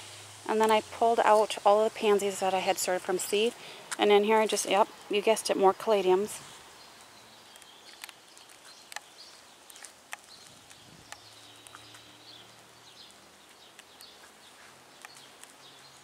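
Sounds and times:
birds chirping: 0.0s - 16.0s
sharp soft clicks: 7.5s - 12.0s.

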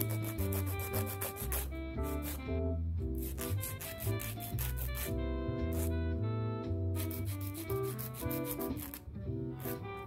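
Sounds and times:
nail file rasping: 0.0s - 2.4s, 3.2s - 5.9s, 7.0s - 9.0s
background music: 0.0s - 10.0s.

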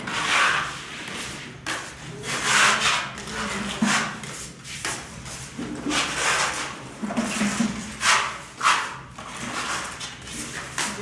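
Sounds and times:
hand tool rasping across plaster: 0.0s - 4.4s, 5.8s - 11.0s.

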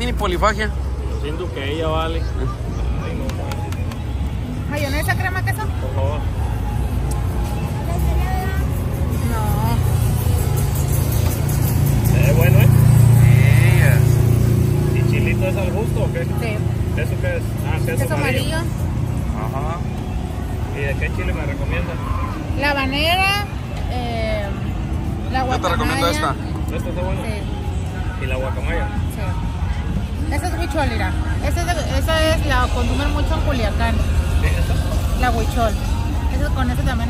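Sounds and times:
background music: 0.0s - 37.0s
vehicle passing with low rumble: 0.0s - 37.0s.

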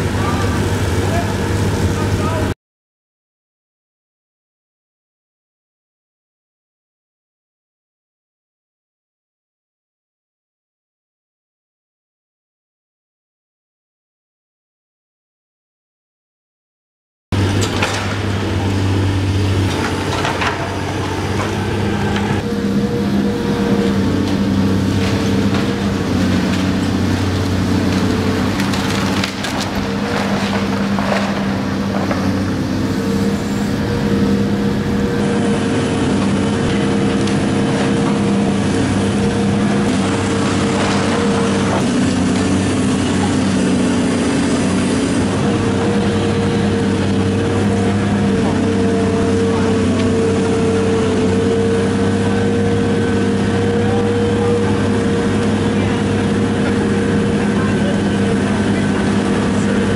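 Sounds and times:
excavator diesel engine running: 0.0s - 2.6s, 17.4s - 59.9s
timber and masonry crunching: 17.4s - 59.9s.

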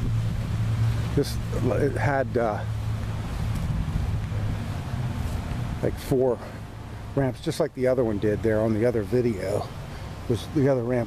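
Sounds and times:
wind rumbling on microphone: 0.0s - 5.8s.

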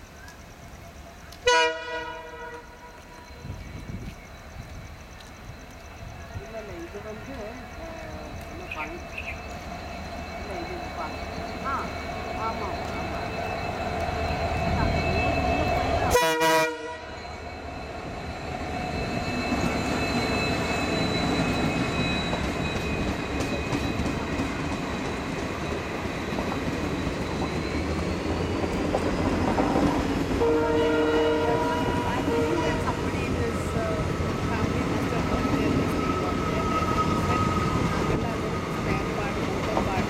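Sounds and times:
train rumble and clatter: 0.0s - 40.0s
train horn: 1.4s - 3.5s, 14.7s - 17.2s, 30.3s - 33.2s.

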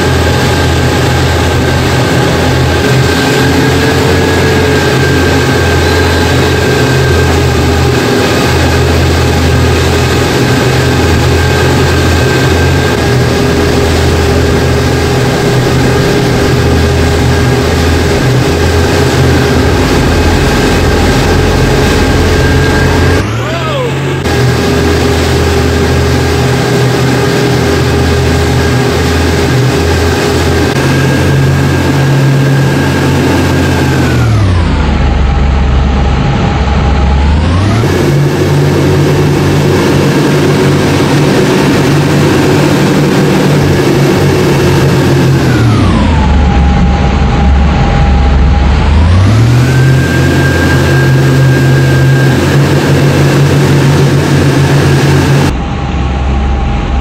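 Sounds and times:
motorboat engine running: 0.0s - 57.0s.

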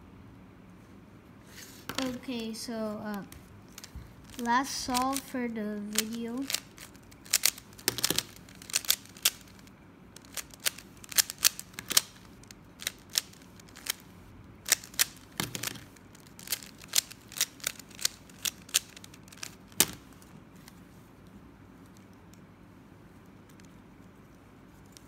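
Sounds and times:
puzzle cube clicking: 3.1s - 5.3s, 5.9s - 14.1s, 14.7s - 20.2s.

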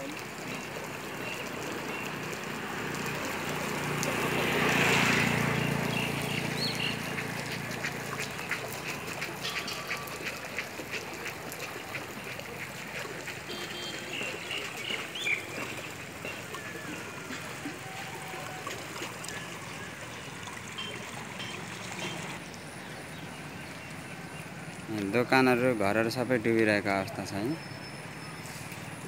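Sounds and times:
floodwater rushing: 0.0s - 29.0s.

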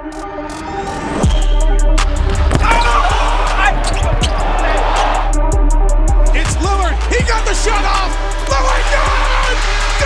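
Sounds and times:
bass-heavy music: 0.0s - 10.0s
voices in arena: 6.4s - 10.0s.

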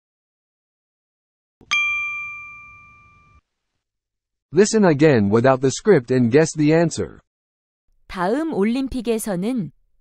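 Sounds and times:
bright chime: 1.6s - 3.4s.

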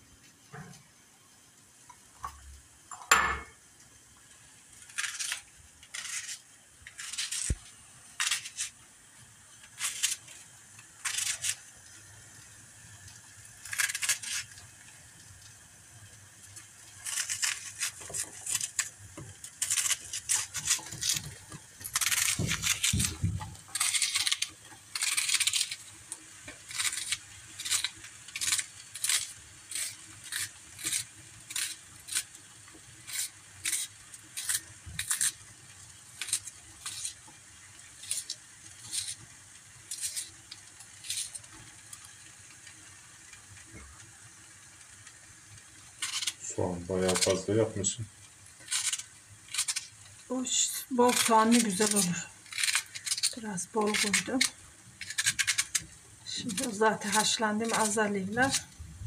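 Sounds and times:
knife cutting onion: 4.7s - 8.8s, 9.6s - 11.8s, 13.5s - 14.6s, 16.9s - 41.8s, 47.1s - 47.5s, 50.6s - 59.0s.

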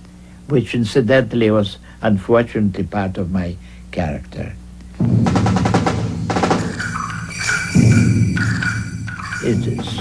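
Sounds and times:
fast percussion strokes: 5.0s - 10.0s
modern orchestral music: 5.0s - 10.0s.

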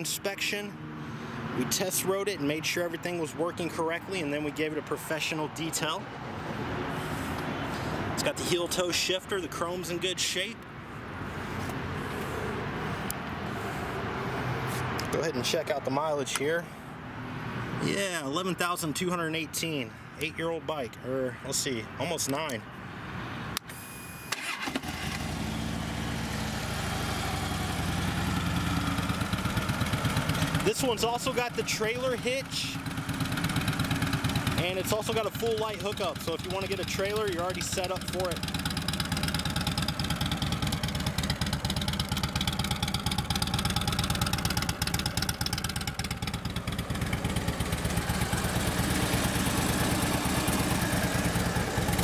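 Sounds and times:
motorcycle starter cranking: 23.7s - 25.4s
motorcycle engine idling: 25.2s - 52.0s.

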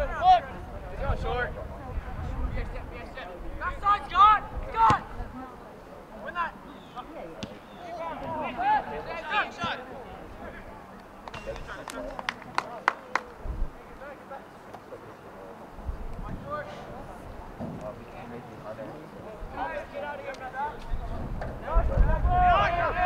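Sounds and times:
players and spectators shouting: 21.6s - 23.0s.

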